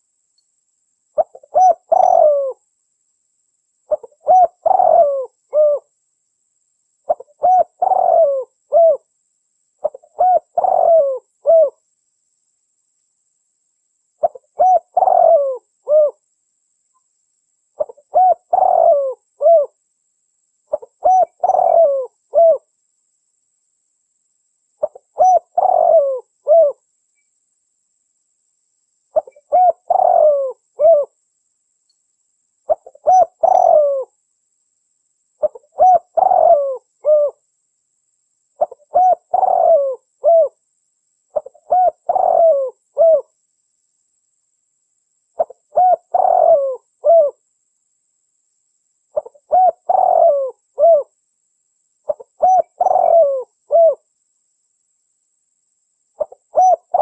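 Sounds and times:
dove cooing: 1.2 - 2.6, 3.9 - 5.9, 7.1 - 9.1, 9.8 - 11.8, 14.2 - 16.2, 17.8 - 19.8, 20.7 - 22.7, 24.8 - 26.8, 29.1 - 31.2, 32.7 - 34.1, 35.4 - 37.4, 38.6 - 40.6, 41.3 - 43.4, 45.4 - 47.4, 49.1 - 51.1, 52.1 - 54.1, 56.2 - 57.0.

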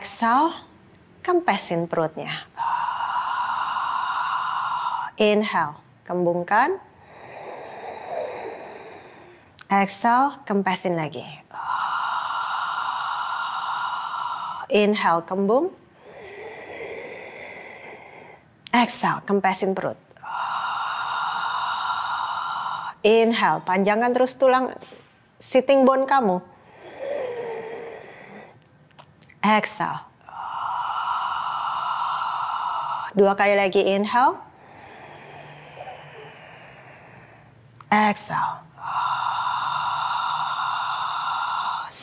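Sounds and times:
woman exhaling through mouth: 2.5 - 5.2, 6.9 - 9.5, 11.5 - 14.7, 20.2 - 23.0, 30.2 - 33.2, 34.6 - 37.6, 38.8 - 42.0.

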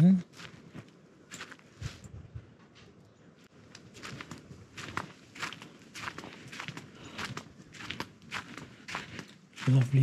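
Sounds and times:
footsteps on dead leaves: 3.9 - 10.0.

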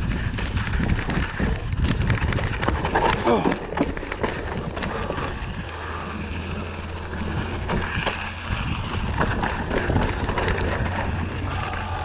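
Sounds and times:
bike rattling: 0.0 - 12.0
bike tyres rumbling on dirt: 0.0 - 12.0
wind buffeting microphone: 0.0 - 12.0.

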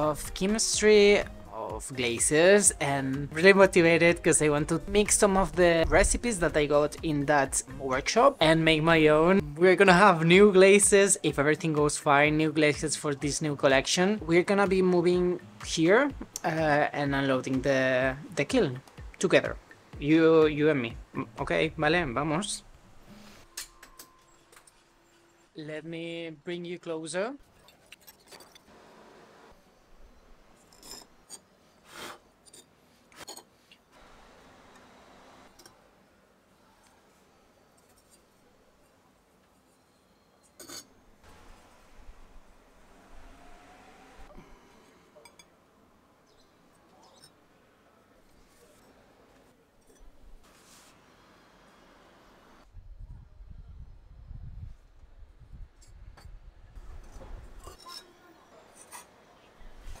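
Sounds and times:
ceramic scraping on kiln shelf: 30.6 - 33.5, 56.8 - 60.0.

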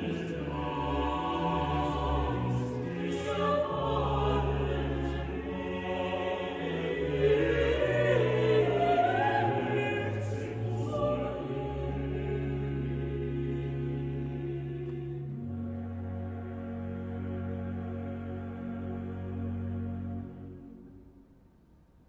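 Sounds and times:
mixed choir singing chords: 0.0 - 21.0.

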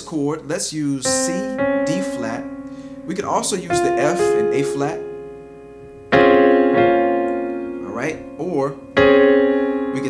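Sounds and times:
piano chord ringing: 1.0 - 10.0.

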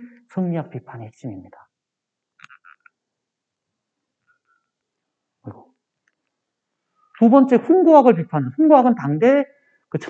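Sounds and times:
presentation remote click: 2.4 - 3.0.

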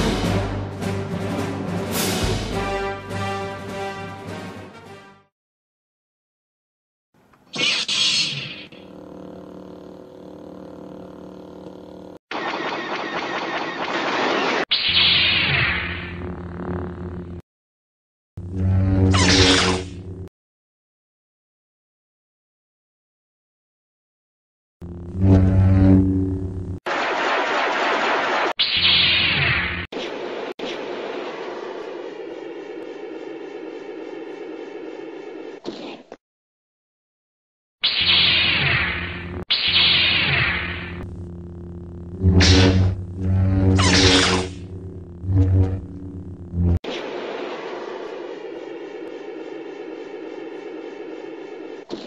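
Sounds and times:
faint hum: 8.7 - 12.2, 30.8 - 35.6, 40.8 - 52.0
steady rushing noise: 30.1 - 35.6, 46.9 - 51.9
noisy rushing sound: 46.9 - 51.9.

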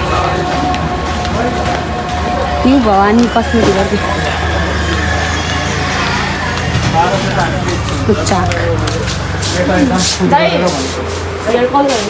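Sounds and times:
indistinct voices talking: 0.0 - 12.0
vehicle traffic rumble: 0.0 - 12.0.

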